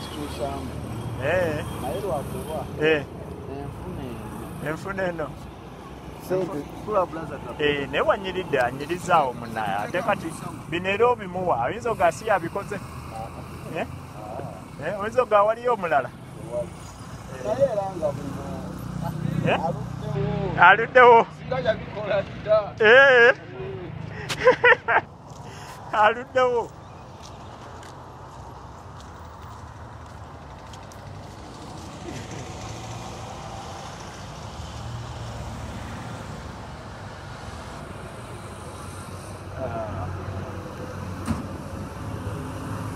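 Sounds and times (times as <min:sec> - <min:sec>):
people talking: 0:00.0 - 0:05.3, 0:06.2 - 0:24.6, 0:25.9 - 0:26.7, 0:39.6 - 0:40.9
heavy vehicle engines and traffic: 0:00.0 - 0:42.9.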